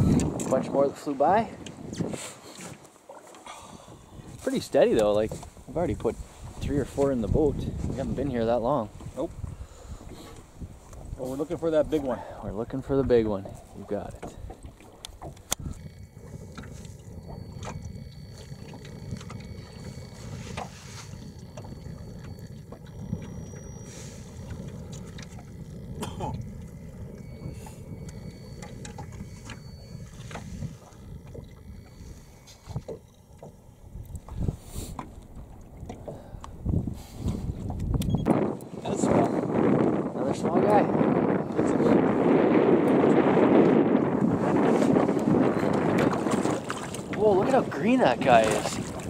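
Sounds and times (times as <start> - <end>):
wind rumble: 0.0 - 2.2, 3.6 - 49.0
small waves: 0.0 - 49.0.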